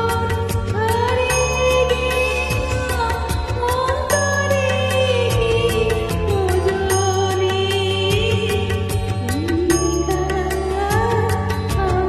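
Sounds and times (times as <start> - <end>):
karaoke backing track: 0.0 - 12.0
woman singing: 0.0 - 12.0.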